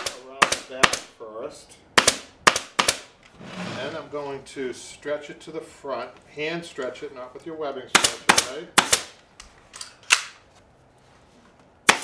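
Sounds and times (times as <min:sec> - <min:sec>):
staple gun firing: 0:02.0 - 0:03.1.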